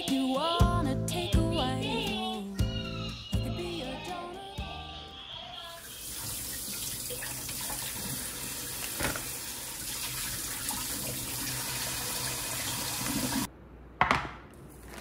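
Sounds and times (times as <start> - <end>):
tap water running into a sink: 5.9 - 13.5.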